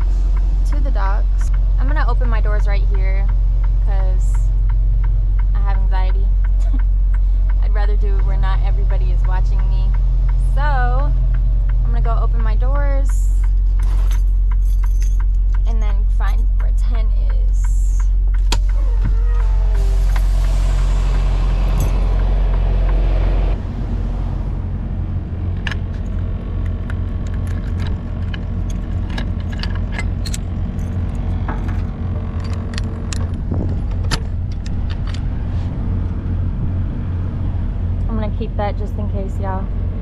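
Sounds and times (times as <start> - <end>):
diesel truck engine idling: 0.0 - 40.0
keys jangling in padlock: 13.8 - 15.4, 27.2 - 33.3.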